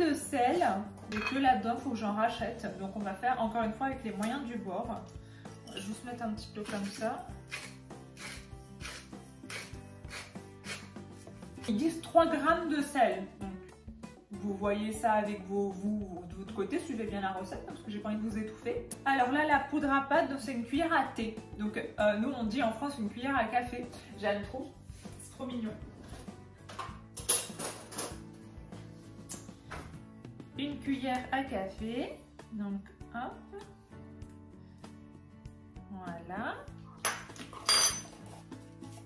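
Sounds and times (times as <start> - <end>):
soft background music: 0.0 - 39.0
salt grinder rasping: 6.6 - 11.4.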